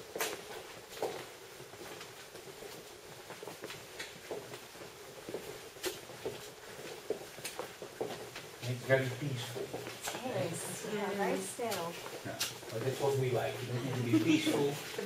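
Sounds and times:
footsteps on hard floor: 0.0s - 15.0s.

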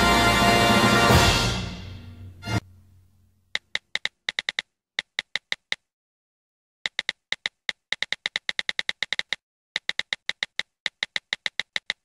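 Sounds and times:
keystroke clicks: 3.6s - 5.8s, 6.9s - 12.0s.

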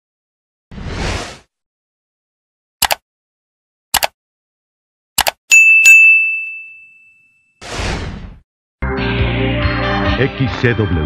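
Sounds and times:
notification bell ding: 5.5s - 7.4s.

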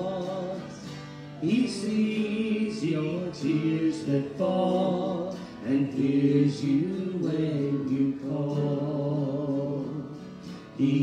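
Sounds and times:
acoustic guitar: 0.0s - 11.0s
man and woman singing: 0.0s - 11.0s.

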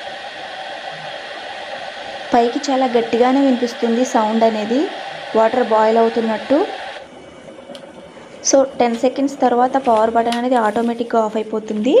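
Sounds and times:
electric kettle boiling hiss: 0.0s - 12.0s.

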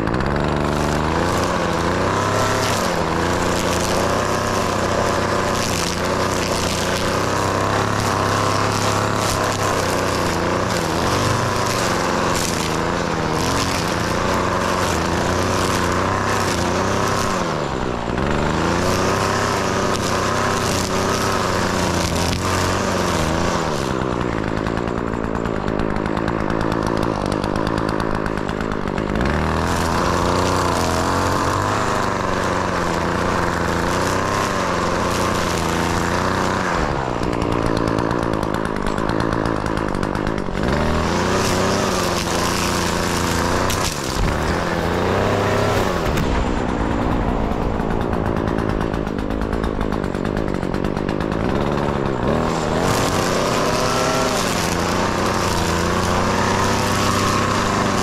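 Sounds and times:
string trimmer cutting grass: 0.0s - 58.0s.

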